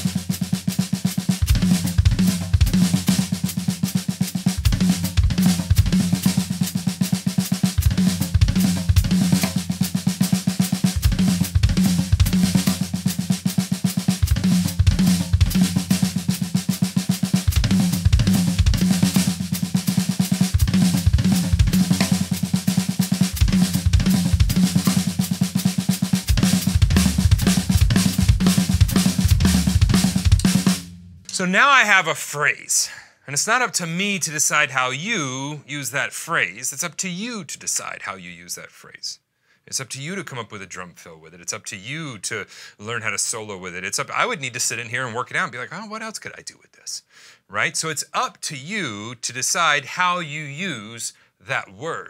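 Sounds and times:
snare and tom strokes: 0:00.0 - 0:31.4
bass drum kicks: 0:11.0 - 0:13.1, 0:14.3 - 0:16.2, 0:17.5 - 0:19.4, 0:20.6 - 0:22.5, 0:23.4 - 0:25.2, 0:26.3 - 0:31.2.

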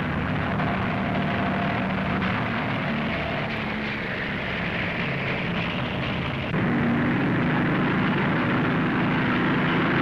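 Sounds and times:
speedboat engine drone: 0:00.0 - 0:10.0.

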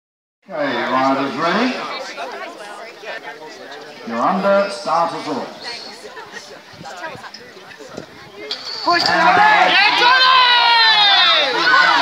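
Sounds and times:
indistinct chatter of voices: 0:00.4 - 0:12.0
close talk: 0:00.5 - 0:12.0.

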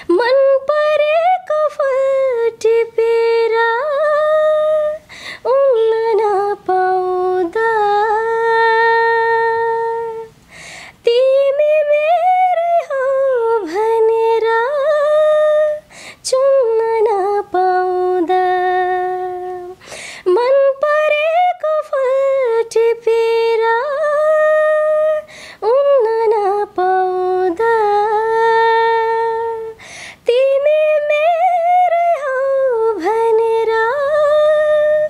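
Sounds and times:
woman singing unaccompanied: 0:00.0 - 0:35.0.

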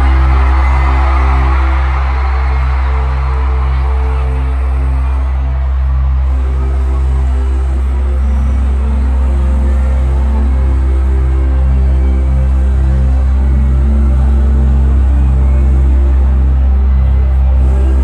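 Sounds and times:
concert music with deep bass: 0:00.0 - 0:18.0
crowd noise: 0:00.0 - 0:18.0.

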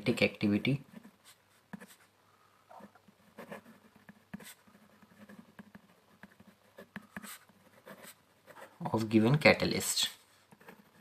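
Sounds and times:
pen scratching on paper: 0:02.7 - 0:08.8, 0:10.5 - 0:11.0.

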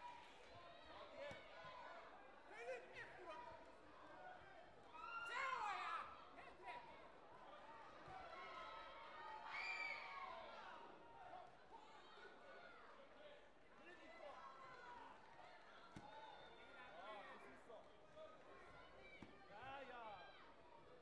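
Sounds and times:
faint voices in sports hall: 0:00.0 - 0:21.0.

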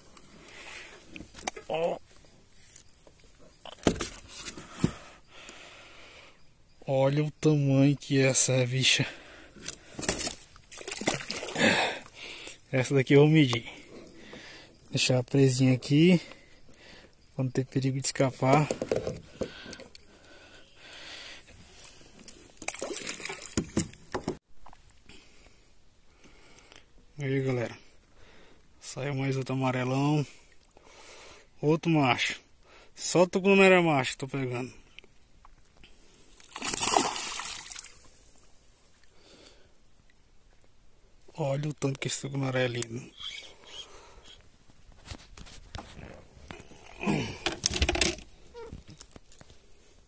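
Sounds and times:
water splashing against a kayak: 0:09.7 - 0:11.9, 0:22.2 - 0:24.4, 0:36.4 - 0:38.2.

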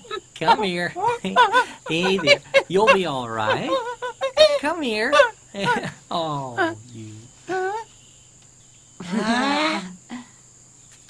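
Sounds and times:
pitched vocal cry: 0:00.0 - 0:07.9
crickets chirring: 0:00.0 - 0:11.0.

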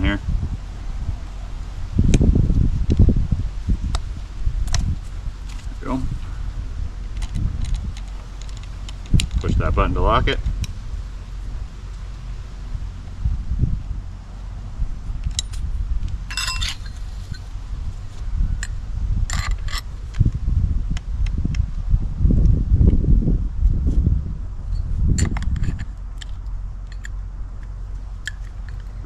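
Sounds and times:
low rumble: 0:00.0 - 0:29.0
light metallic clinks: 0:16.3 - 0:17.5.

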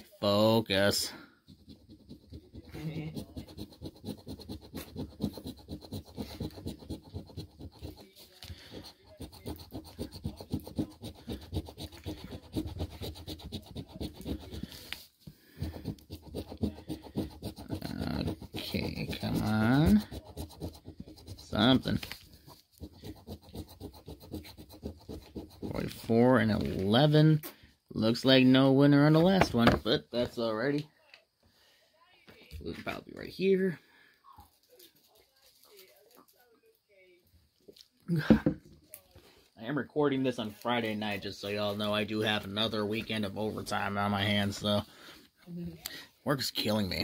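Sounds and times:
coin scratching lottery ticket: 0:00.9 - 0:14.9, 0:15.6 - 0:26.1.

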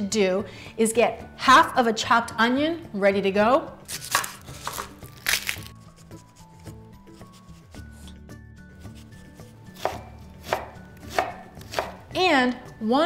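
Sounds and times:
knife chopping on wooden board: 0:03.9 - 0:05.0, 0:08.9 - 0:12.1.

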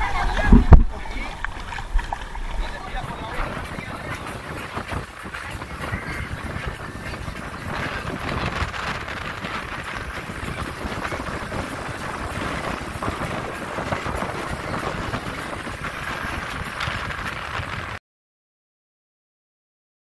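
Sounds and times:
faint voices: 0:00.0 - 0:17.8
water noise: 0:00.0 - 0:18.0
wind noise: 0:00.0 - 0:18.0
thump against microphone: 0:00.4 - 0:01.0.

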